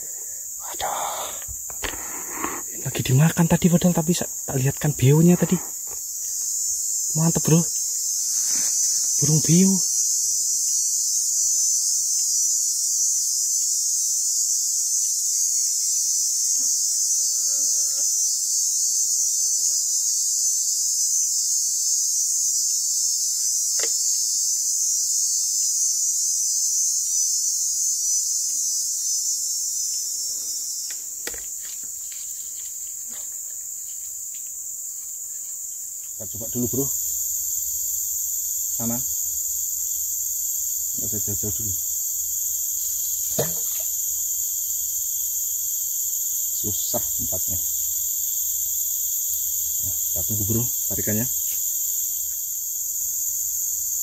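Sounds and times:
high-pitched insect buzz: 0.0 - 54.0.

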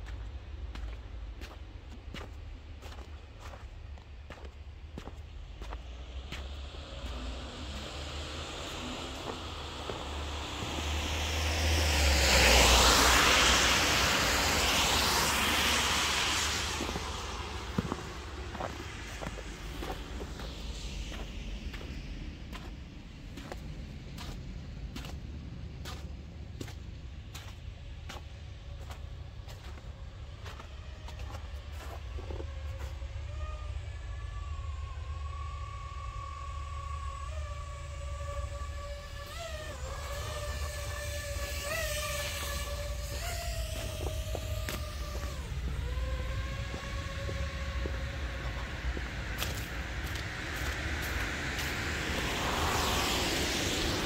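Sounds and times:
steady low rumble: 0.0 - 54.0
car tyres hissing on wet road: 5.8 - 33.8, 34.8 - 54.0.

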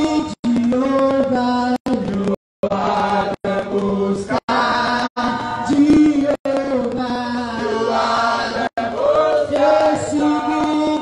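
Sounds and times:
congregation singing: 0.0 - 11.0
person singing into a microphone: 0.0 - 11.0.

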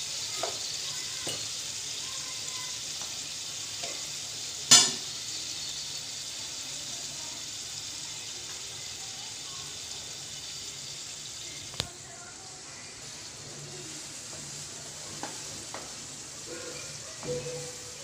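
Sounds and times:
chicken sizzling in frying pan: 0.0 - 18.0.

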